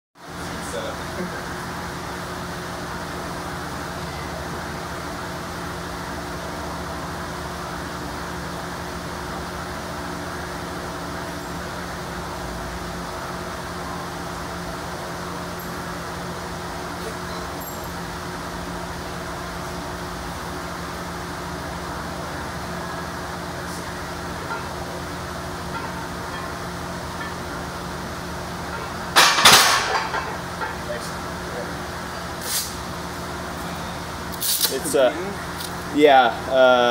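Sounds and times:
floor fan humming: 0.2s - 36.9s
barbell clanking onto rack: 29.1s - 30.8s.

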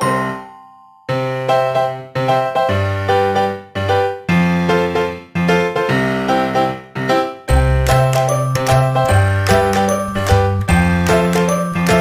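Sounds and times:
light background music: 7.5s - 12.0s.

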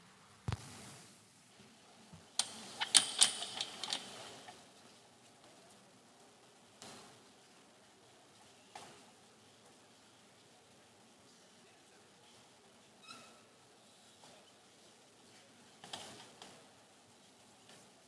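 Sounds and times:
sharp clicks and rattles: 2.3s - 4.7s.

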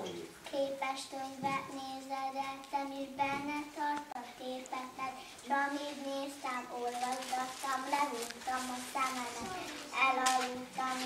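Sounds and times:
girl singing: 0.4s - 11.0s.

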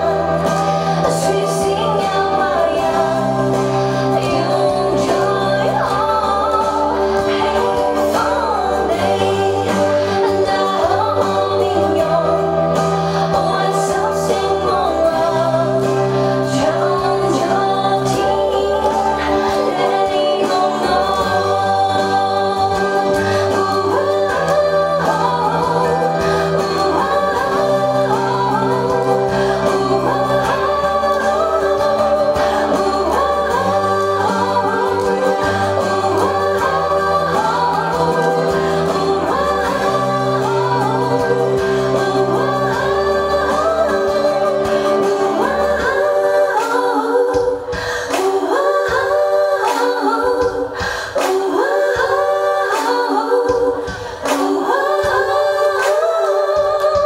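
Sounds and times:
musical accompaniment: 0.0s - 57.0s
woman singing into microphone: 0.0s - 57.0s.

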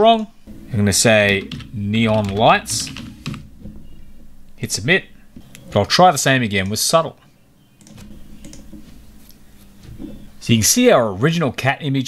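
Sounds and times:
computer keyboard typing: 0.9s - 3.7s, 7.8s - 8.8s.

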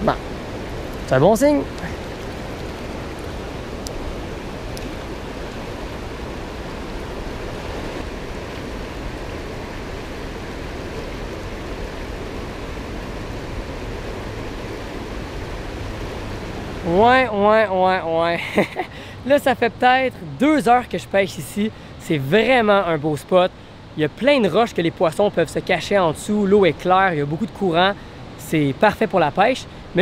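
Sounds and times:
river running over rocks: 0.0s - 30.0s.

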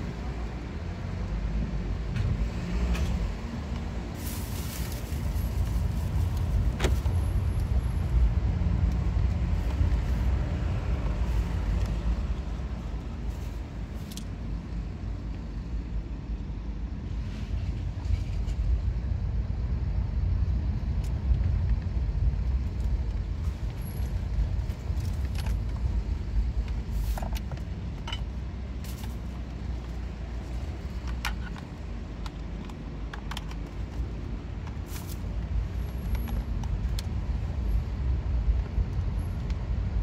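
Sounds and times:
car engine and tyres rumbling: 0.0s - 40.0s.

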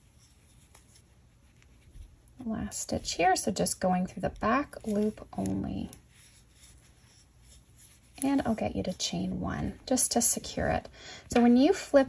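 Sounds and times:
yarn rustling over crochet hook: 0.0s - 10.8s.

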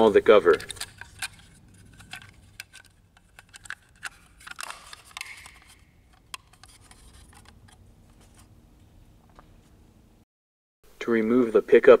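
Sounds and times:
plastic scraping on plastic: 0.5s - 8.5s
plastic cover clicking on: 0.6s - 7.6s.

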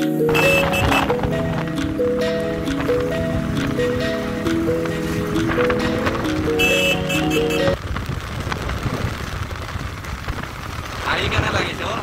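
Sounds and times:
background music: 0.0s - 7.8s
wind and road noise: 0.3s - 12.0s.

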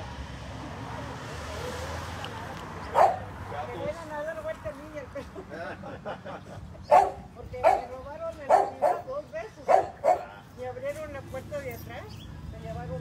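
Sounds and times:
dog barking sharply: 2.9s - 3.3s, 6.9s - 7.9s, 8.5s - 9.1s, 9.7s - 10.3s.

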